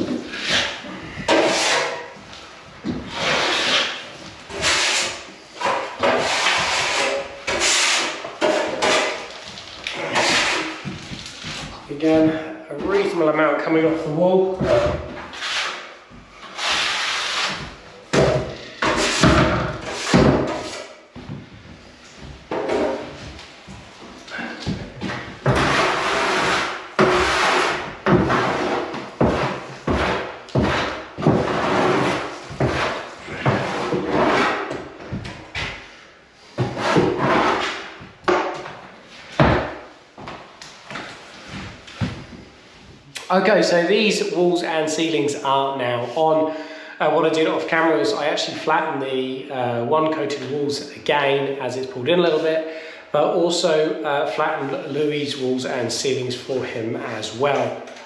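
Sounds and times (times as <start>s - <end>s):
spatula scraping wet plaster: 0.0s - 2.2s, 3.0s - 13.4s, 14.6s - 21.0s, 24.3s - 35.0s, 36.5s - 38.0s.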